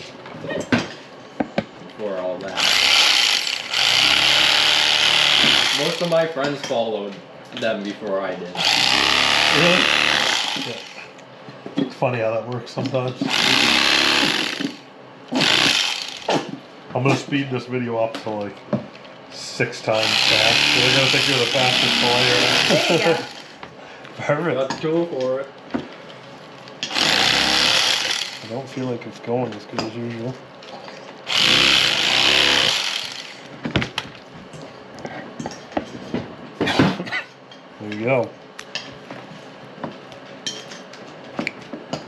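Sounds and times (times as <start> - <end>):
electric knife cutting: 2.5 - 6.2, 8.6 - 11.1, 13.2 - 16.6, 19.9 - 23.6, 26.8 - 28.6, 31.3 - 33.5.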